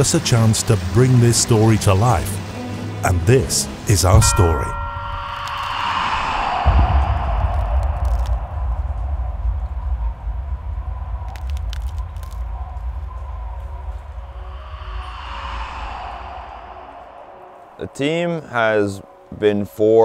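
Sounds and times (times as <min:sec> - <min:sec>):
falling whoosh: 0:04.2 - 0:09.5, 0:14.1 - 0:18.3
deep low rumble: 0:04.2 - 0:17.8
sharp cracks: 0:06.6 - 0:08.7.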